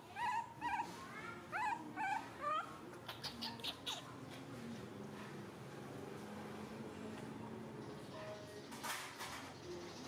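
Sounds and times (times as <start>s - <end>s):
baby monkey squealing: 1.6s - 4.1s.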